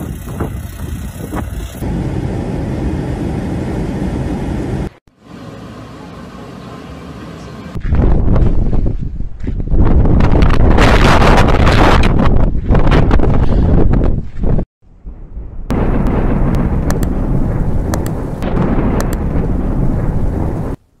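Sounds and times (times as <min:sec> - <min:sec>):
wind buffeting microphone: 0:00.0 - 0:01.9, 0:07.8 - 0:20.8
storm rumble: 0:14.8 - 0:21.0
sharp clicks: 0:16.0 - 0:17.2, 0:17.9 - 0:18.3, 0:18.9 - 0:19.5.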